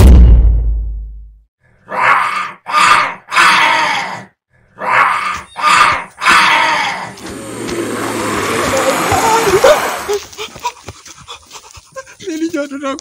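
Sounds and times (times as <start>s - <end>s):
harsh monster-like growls: 1.9s - 10.2s.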